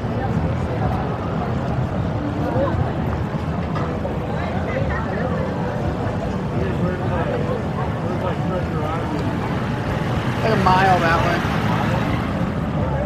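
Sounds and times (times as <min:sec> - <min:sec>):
people chattering: 0:00.0 - 0:13.0
street traffic rumble: 0:00.0 - 0:13.0.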